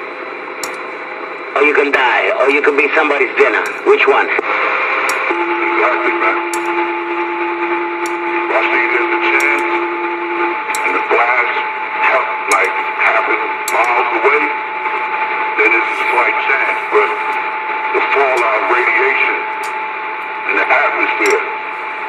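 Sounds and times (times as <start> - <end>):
high steady tone: 0.6 - 0.9, 5.0 - 22.0
garbled radio voices: 1.5 - 21.7
radio static hiss: 1.5 - 22.0.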